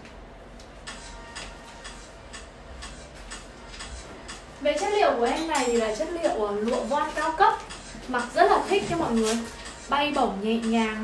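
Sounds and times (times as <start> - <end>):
light ticking beat: 0.0 - 11.0
quiet background music: 0.0 - 11.0.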